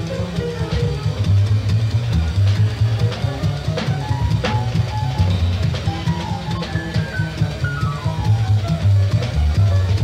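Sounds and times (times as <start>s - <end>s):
drum kit and cymbal hits: 0.0s - 10.0s
plucked double bass: 0.0s - 10.0s.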